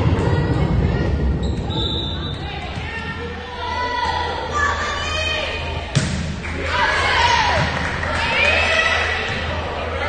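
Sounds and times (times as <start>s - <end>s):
chatter in large hall: 0.0s - 10.0s
referee's whistle: 1.5s - 2.4s.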